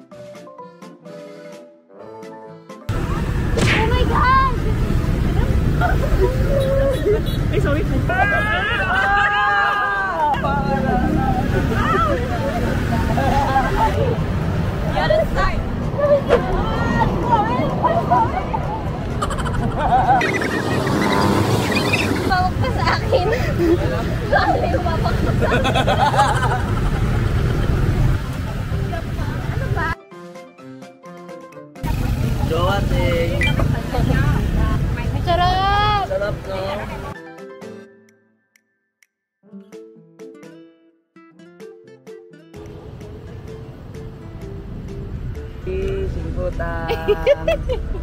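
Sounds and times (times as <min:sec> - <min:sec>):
city street traffic: 0:02.9 - 0:30.0, 0:30.6 - 0:37.2, 0:42.5 - 0:48.0
passing motorbikes and cars: 0:02.9 - 0:30.0, 0:31.8 - 0:37.2, 0:42.6 - 0:48.0
people talking: 0:03.0 - 0:09.2, 0:14.9 - 0:19.4, 0:21.8 - 0:26.4, 0:27.9 - 0:30.0, 0:31.8 - 0:37.2, 0:45.6 - 0:47.8
car passing close by: 0:20.0 - 0:22.9.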